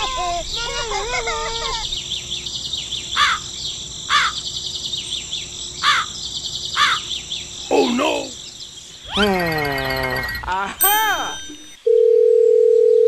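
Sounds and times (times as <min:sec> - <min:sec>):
birds chirping: 0:00.0 - 0:11.8
crow cawing: 0:03.2 - 0:03.5, 0:04.1 - 0:04.4, 0:05.8 - 0:06.2, 0:06.8 - 0:07.1.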